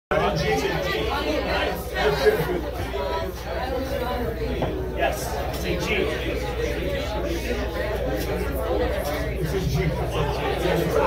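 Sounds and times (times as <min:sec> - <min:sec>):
overlapping chatter: 0:00.1 - 0:11.0.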